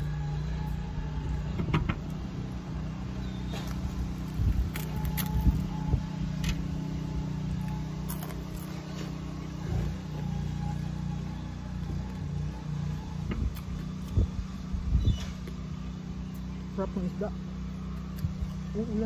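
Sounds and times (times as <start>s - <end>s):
low motor hum: 0.0s - 19.0s.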